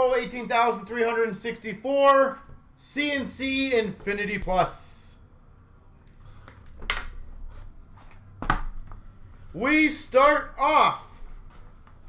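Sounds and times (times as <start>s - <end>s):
soft cardboard handling noise: 6.2s - 9.6s, 11.1s - 12.0s.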